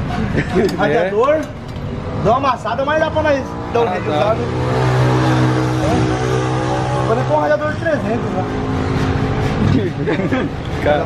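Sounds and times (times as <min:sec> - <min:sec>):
engine running steadily: 0:03.4 - 0:11.0.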